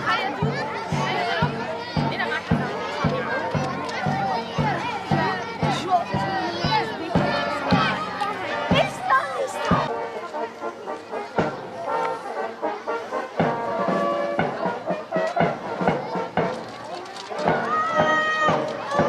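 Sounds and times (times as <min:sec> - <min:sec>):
bass drum beats: 0:00.0 - 0:09.9, 0:13.4 - 0:16.7, 0:17.4 - 0:19.0
people talking: 0:00.0 - 0:19.0
brass band playing: 0:08.4 - 0:19.0
tuba: 0:09.9 - 0:16.6.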